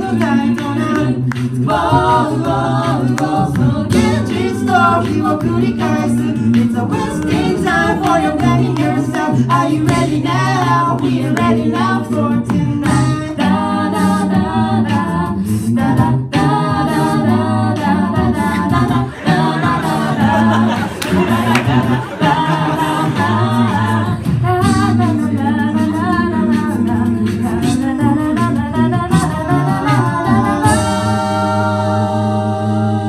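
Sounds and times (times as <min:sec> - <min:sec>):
a cappella group singing in harmony: 0:00.0 - 0:33.0.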